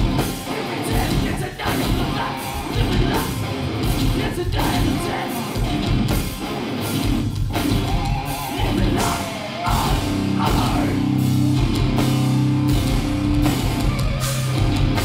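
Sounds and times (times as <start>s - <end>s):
loud hardcore band playing: 0.0s - 15.0s.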